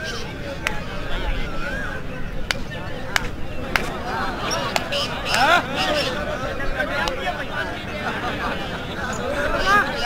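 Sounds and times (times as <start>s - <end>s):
sharp hand slaps: 2.5s - 4.0s, 4.7s - 5.5s.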